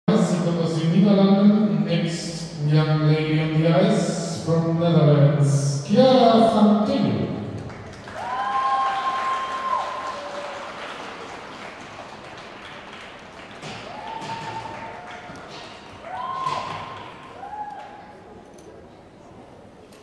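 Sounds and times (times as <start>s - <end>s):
spectators applauding: 7.6s - 18.0s
high-pitched cheering calls: 8.2s - 10.7s, 16.0s - 18.2s.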